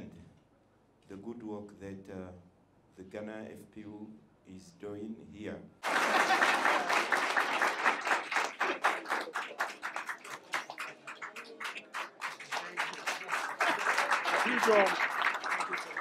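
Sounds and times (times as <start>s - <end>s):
audience applauding: 5.8s - 16.0s
voices: 8.6s - 16.0s.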